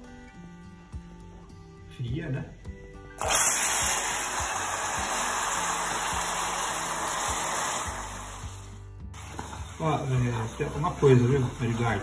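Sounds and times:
sugar sizzling hiss: 0:03.2 - 0:12.0.

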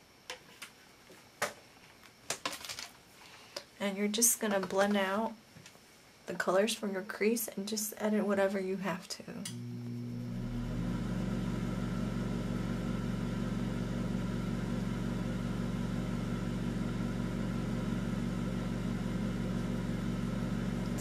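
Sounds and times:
steady buzzy low hum: 0:03.8 - 0:21.0.

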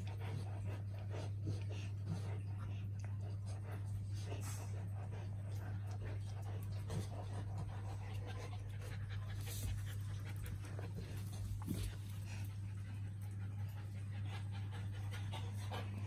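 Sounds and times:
dog panting: 0:00.0 - 0:16.0
steady low hum: 0:00.0 - 0:16.0.

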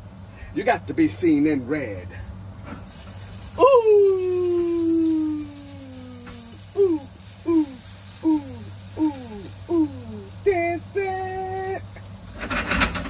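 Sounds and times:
potatoes sizzling in a skillet: 0:02.8 - 0:12.4.

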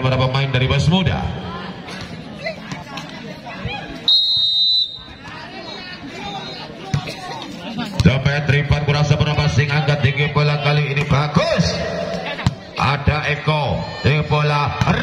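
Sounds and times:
spectator chatter: 0:00.0 - 0:15.0
referee's whistle blast: 0:04.1 - 0:05.2
man talking: 0:07.8 - 0:12.2, 0:12.8 - 0:15.0.

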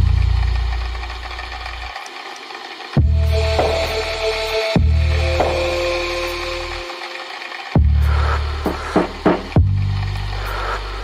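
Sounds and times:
low synth bass note: 0:00.0 - 0:01.8, 0:03.0 - 0:10.3
high synth texture: 0:02.8 - 0:09.6
synth-pop music: 0:03.0 - 0:09.7.

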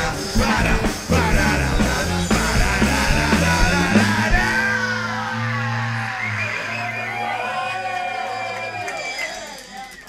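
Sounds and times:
rock band chord ringing out: 0:00.0 - 0:06.0
audience cheering: 0:03.7 - 0:10.0.

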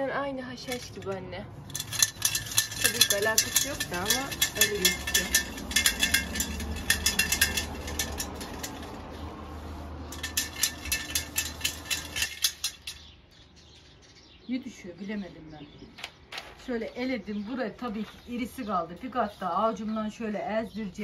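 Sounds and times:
seeds rattling in metal sieve: 0:00.6 - 0:13.1.

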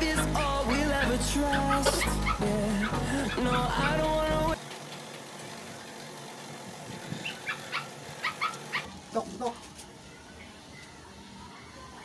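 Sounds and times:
dog yipping: 0:07.2 - 0:09.6.

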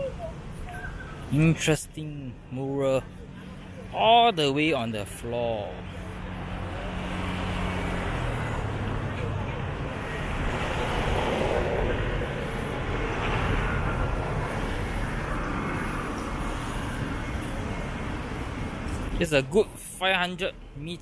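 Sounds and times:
street traffic: 0:00.0 - 0:21.0.

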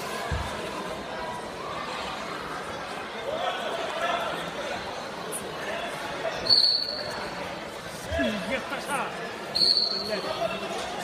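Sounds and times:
murmur of spectators: 0:00.0 - 0:11.0
referee's whistle blast: 0:09.5 - 0:10.2.

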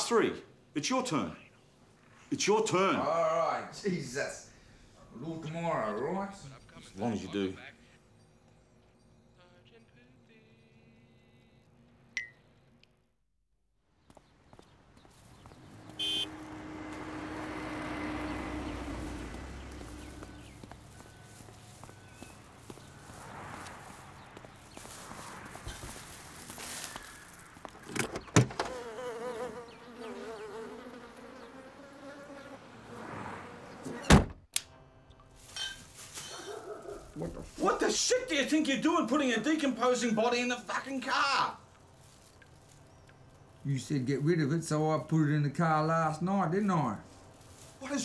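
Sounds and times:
car park traffic: 0:14.4 - 0:28.9
flies buzzing: 0:15.0 - 0:34.0.

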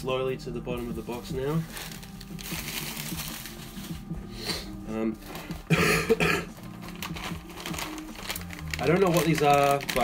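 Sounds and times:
soft background music: 0:00.0 - 0:10.0
packaging rustling in a box: 0:01.0 - 0:04.0, 0:06.6 - 0:10.0.

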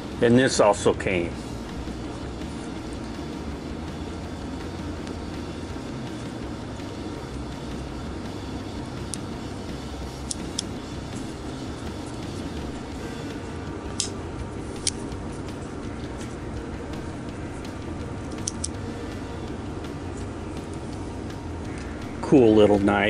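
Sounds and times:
low background rumble: 0:00.0 - 0:23.0
pocketknife blade clicks: 0:18.4 - 0:18.8.

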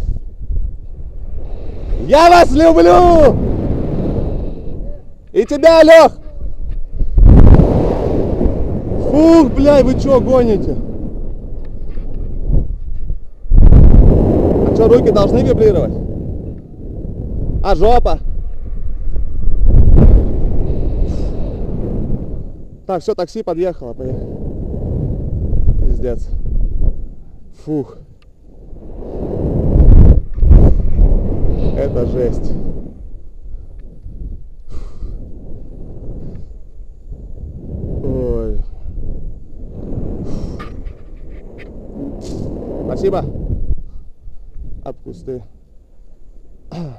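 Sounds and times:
wind rushing over microphone: 0:00.0 - 0:46.9.

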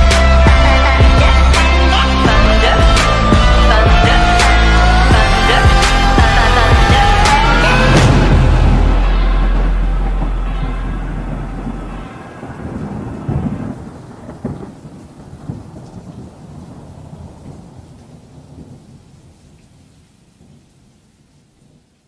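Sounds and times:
music chord: 0:00.0 - 0:13.9
rain: 0:00.0 - 0:22.0
rolling thunder: 0:02.3 - 0:20.7
sharp thunderclap: 0:05.1 - 0:18.9.

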